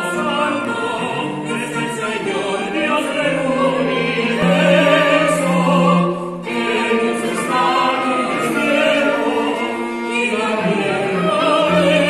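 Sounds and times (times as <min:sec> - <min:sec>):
soprano and tenor singing: 0:00.0 - 0:12.0
string quartet: 0:00.0 - 0:12.0.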